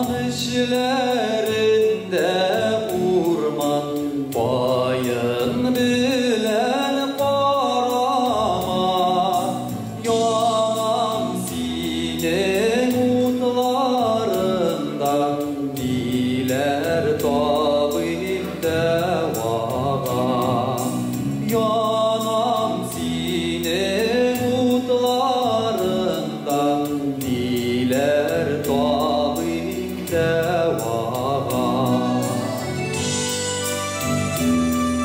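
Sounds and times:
man singing into microphone: 0.0s - 33.3s
instrumental backing music: 0.0s - 35.0s.

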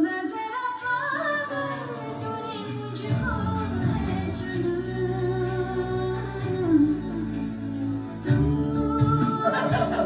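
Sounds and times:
person singing: 0.0s - 10.0s
song accompaniment: 0.0s - 10.0s.

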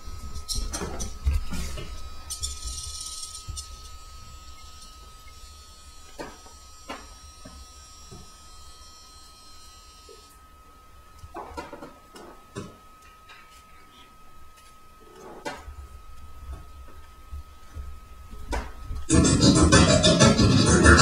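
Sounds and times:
high electronic tone: 19.1s - 21.0s.

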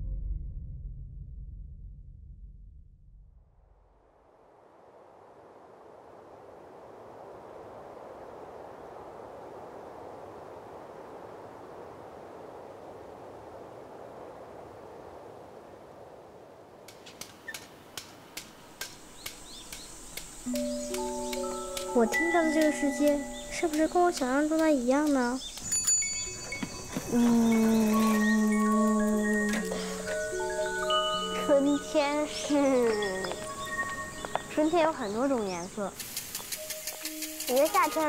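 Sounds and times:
city ambience hum: 4.1s - 25.7s, 26.5s - 38.0s
bird chirps: 19.1s - 38.0s
held musical notes: 20.5s - 24.3s, 25.6s - 35.6s
sharp irregular clicks: 36.0s - 38.0s.

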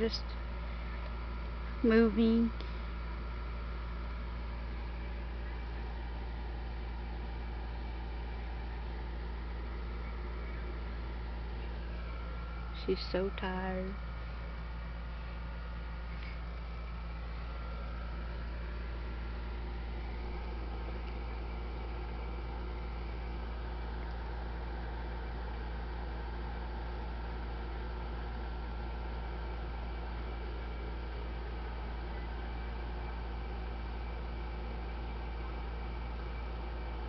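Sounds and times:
room hum and hiss: 0.0s - 37.0s.

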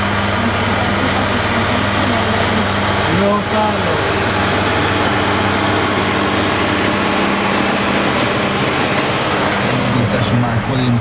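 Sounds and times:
tractor engine running: 0.0s - 11.0s.

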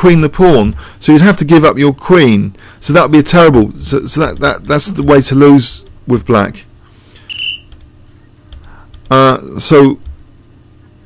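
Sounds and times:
high whistling tone: 7.3s - 7.7s.

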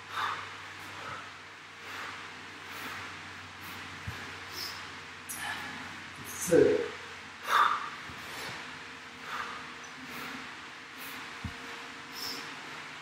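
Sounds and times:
man breathing hard: 0.0s - 6.5s, 7.4s - 12.8s.

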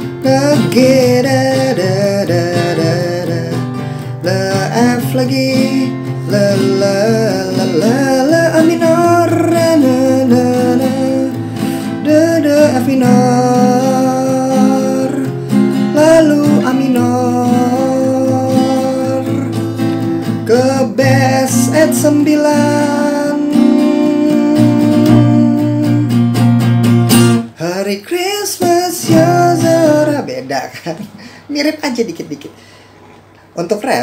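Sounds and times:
man singing wordless syllables: 0.0s - 26.2s, 27.5s - 32.5s
acoustic guitar strumming: 0.0s - 31.5s.

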